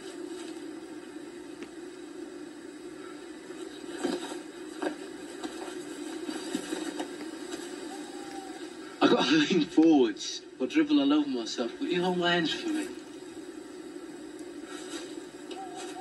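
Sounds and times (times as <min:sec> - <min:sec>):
steady low hiss: 0:00.0 - 0:16.0.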